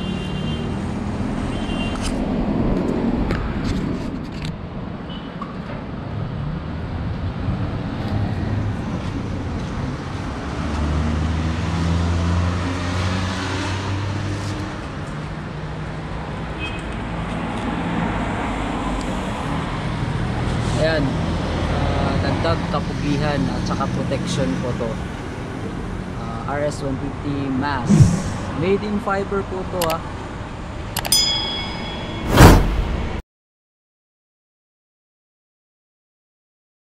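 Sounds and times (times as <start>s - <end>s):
vehicle engines passing: 0.0s - 31.0s.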